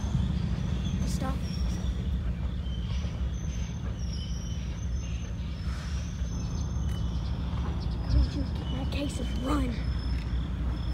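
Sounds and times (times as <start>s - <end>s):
freight train rumbling past: 0.0s - 10.9s.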